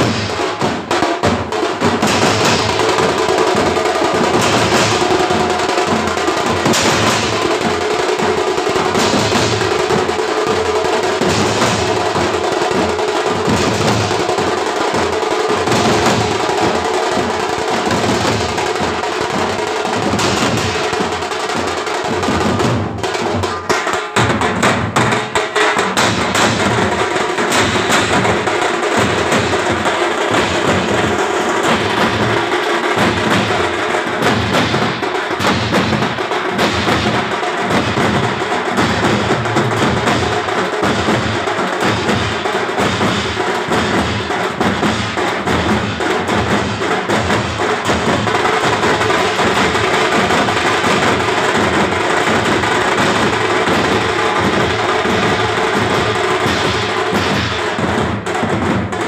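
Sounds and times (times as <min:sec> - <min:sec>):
drummers beating drums: 0:00.0 - 0:59.0.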